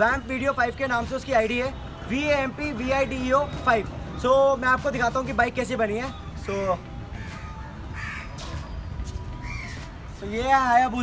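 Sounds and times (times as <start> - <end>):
crow cawing: 7.3 - 8.5, 9.4 - 9.8.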